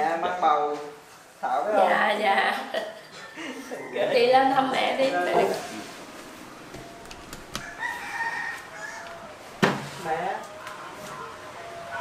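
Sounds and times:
rooster crowing: 3.1s - 5.8s, 6.8s - 9.9s.

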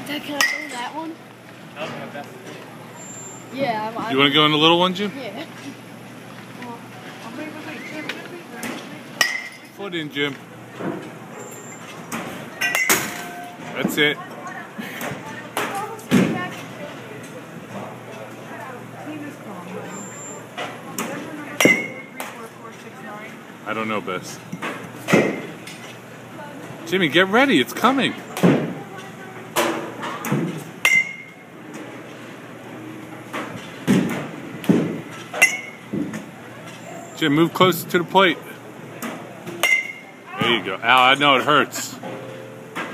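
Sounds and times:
baseball knocks in batting cage: 33.8s - 36.2s.

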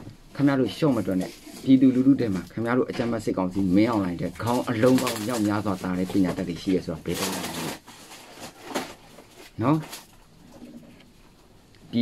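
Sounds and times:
man speaking: 0.3s - 7.8s, 9.6s - 10.0s.

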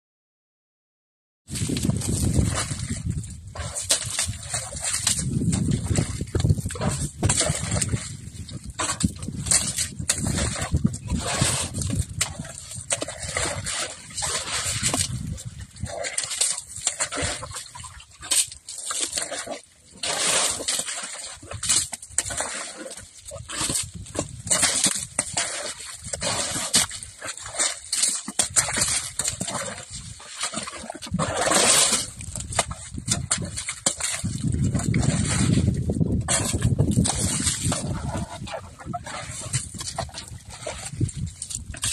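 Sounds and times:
elephant digging soil: 1.5s - 41.9s.

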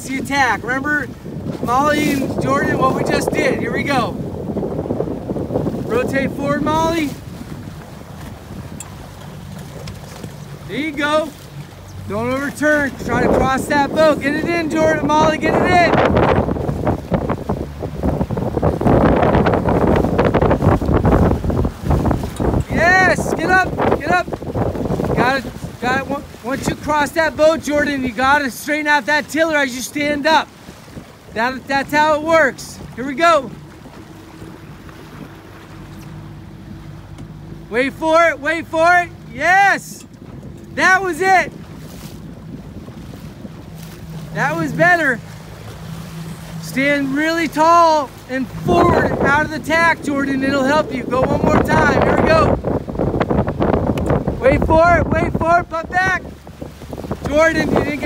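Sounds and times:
boat engine idling: 0.0s - 58.0s
choppy water: 0.0s - 58.0s
wind buffeting microphone: 0.0s - 58.0s.

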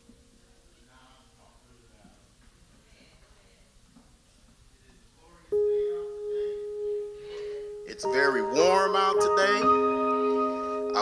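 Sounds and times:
church organ steady note: 5.5s - 11.0s.

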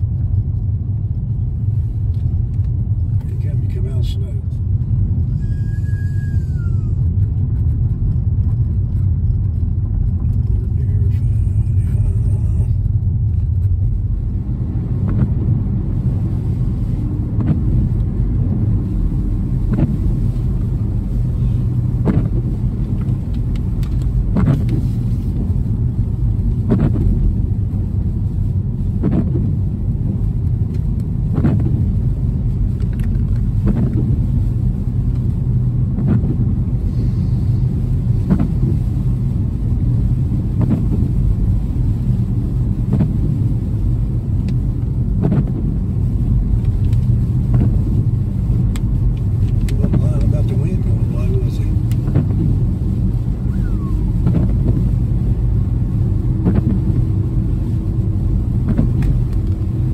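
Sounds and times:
car rumble on wet road: 0.0s - 59.9s
windshield wipers sweeping: 0.1s - 59.9s.

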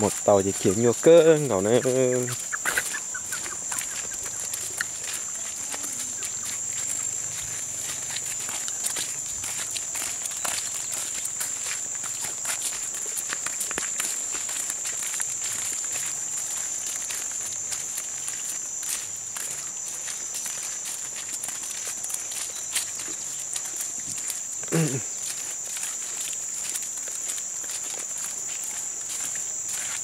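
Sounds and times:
footsteps on muddy dirt road: 0.0s - 30.0s
high-pitched insect drone: 0.0s - 30.0s.

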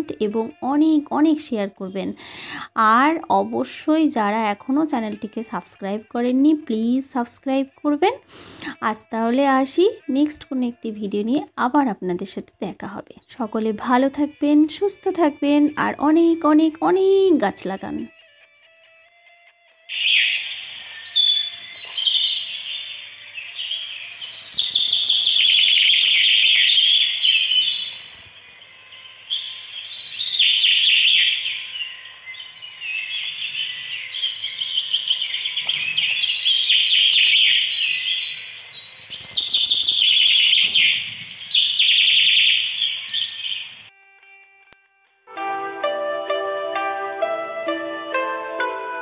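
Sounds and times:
small birds chirping: 19.9s - 43.9s.

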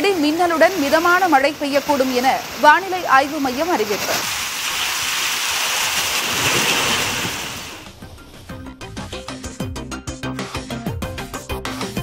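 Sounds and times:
heavy rain pouring: 0.0s - 8.5s.

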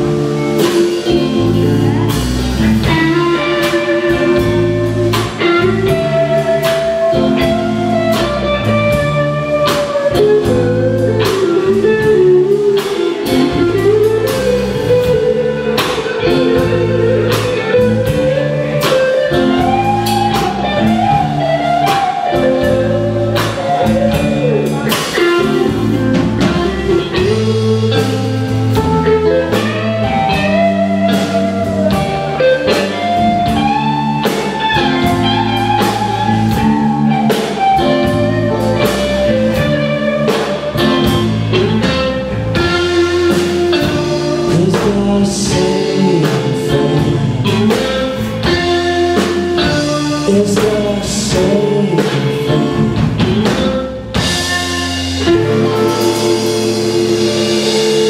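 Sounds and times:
blues-rock band playing: 0.0s - 58.0s
sliding lead guitar line: 0.0s - 58.0s.

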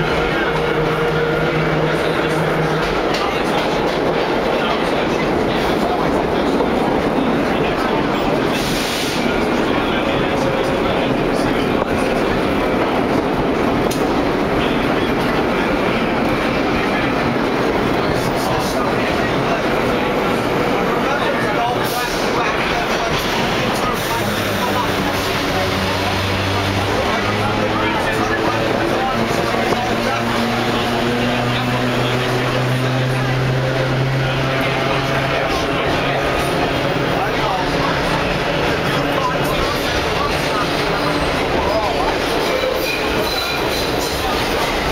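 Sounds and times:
subway car rumbling: 0.0s - 44.9s.

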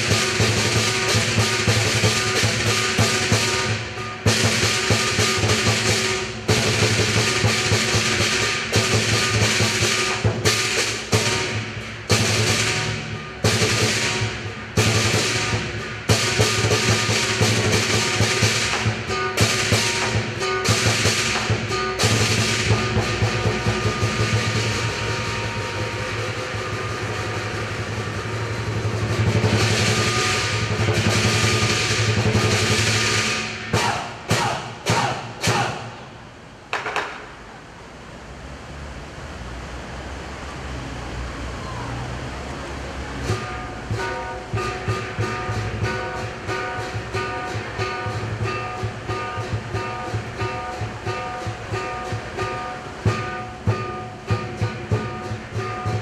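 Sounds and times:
gong: 0.0s - 36.0s, 43.1s - 56.0s
large drum: 0.0s - 37.5s, 43.0s - 56.0s
cymbals: 0.0s - 37.6s, 41.6s - 56.0s.

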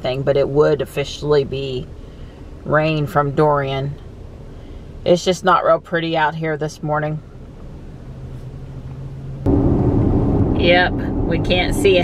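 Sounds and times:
low cabin hum: 0.0s - 12.0s
road and tyre rumble: 0.0s - 12.0s.

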